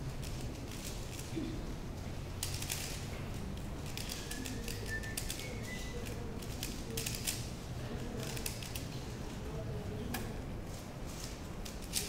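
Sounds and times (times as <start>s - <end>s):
low background hum: 0.0s - 12.0s
plastic puzzle cube clicking: 3.8s - 7.5s.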